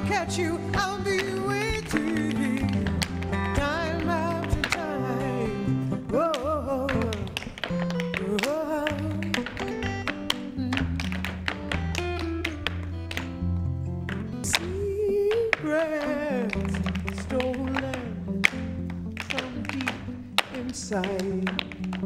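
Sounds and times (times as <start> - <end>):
recorded song with singing: 0.0 - 9.8, 14.4 - 22.0
tap shoes clicking on stage: 0.0 - 22.0.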